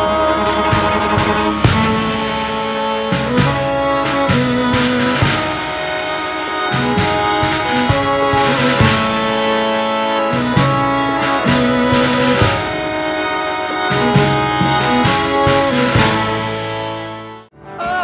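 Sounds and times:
harmonium chords: 0.0 - 18.0
violin: 0.0 - 18.0.

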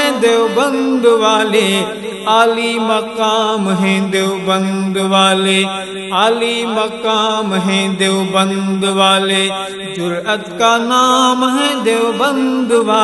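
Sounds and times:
layered wordless vocals: 0.0 - 13.0.

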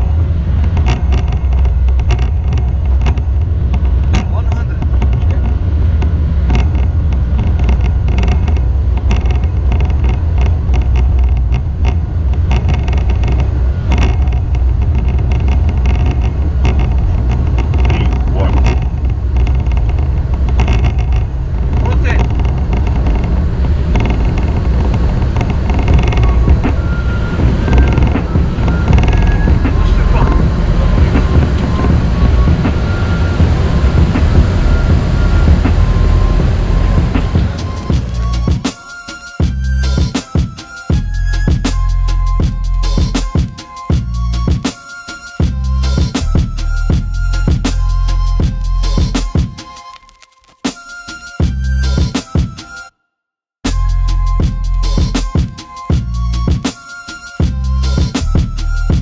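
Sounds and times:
low rumble of engines: 0.0 - 49.9, 51.3 - 52.9, 53.6 - 59.0
wheels knocking and rattling: 0.0 - 52.8, 53.6 - 59.0.

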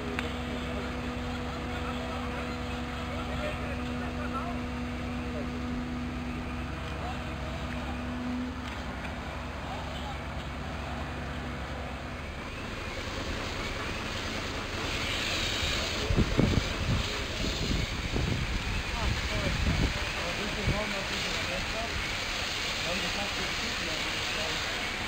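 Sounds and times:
fire truck engines rumbling: 0.0 - 25.0
steady hum: 0.0 - 25.0
hiss: 12.3 - 25.0.

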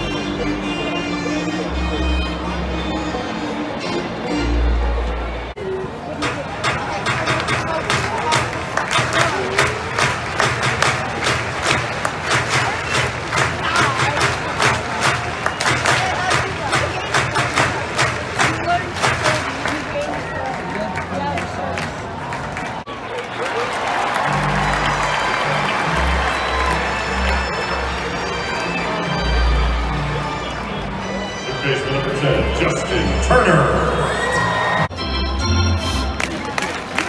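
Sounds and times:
stadium organ music: 0.0 - 21.4, 22.8 - 37.0
crowd chatter: 0.0 - 37.0
crowd clapping in rhythm: 6.4 - 33.9, 36.0 - 37.0.

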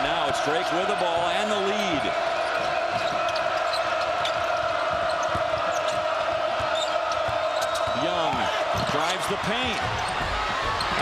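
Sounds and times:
arena crowd noise: 0.0 - 11.0
basketball bouncing: 1.1 - 11.0
shoe squeaks: 2.5 - 6.1.

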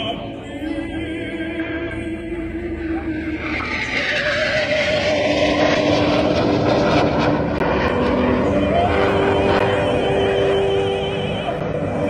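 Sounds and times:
jets flying past: 3.4 - 12.0.

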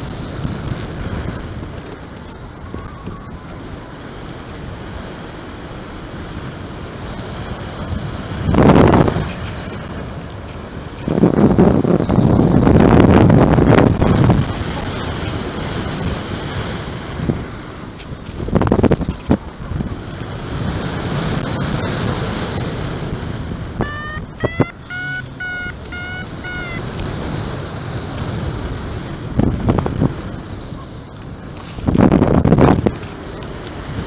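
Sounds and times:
wind rushing over microphone: 0.0 - 34.0
high electronic beeps: 23.8 - 26.8.

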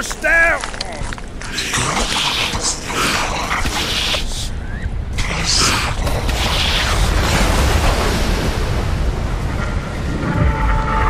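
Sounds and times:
explosion rumble with hissing: 5.1 - 10.7.

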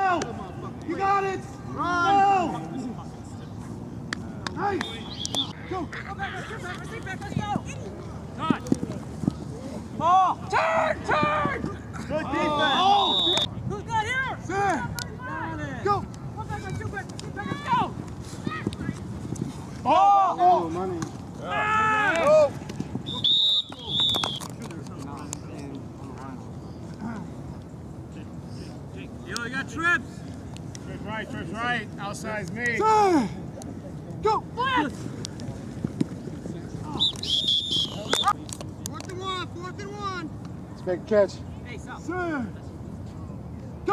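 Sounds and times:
players shouting: 0.0 - 3.0, 9.7 - 18.8, 19.8 - 24.4
referee's whistle blasts: 4.8 - 5.5, 12.6 - 13.5, 23.1 - 24.4, 37.0 - 38.3.

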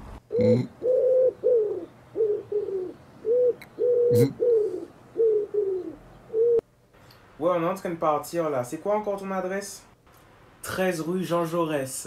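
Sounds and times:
hand-blown pigeon cooing hoots: 0.3 - 6.6.

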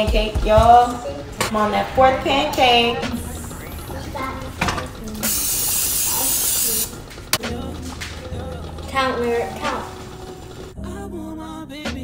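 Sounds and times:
aerosol can hissing: 5.2 - 7.0.

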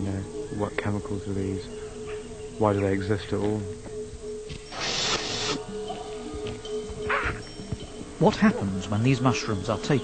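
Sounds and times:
soft hissing swells: 4.5 - 6.4.

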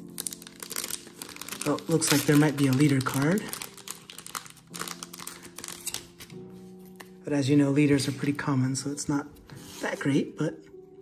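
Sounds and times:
plastic wrapper crinkling: 0.0 - 7.2.

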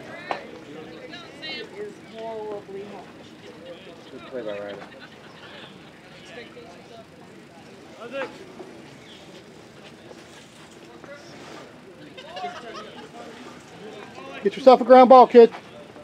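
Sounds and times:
faint scattered voices: 0.0 - 16.0.

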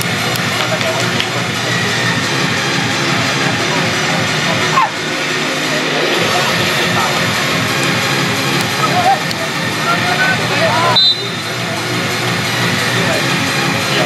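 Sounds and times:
people calling and shouting: 0.0 - 14.0
rushing background noise: 0.0 - 14.0
high whistle blast: 10.8 - 11.6.

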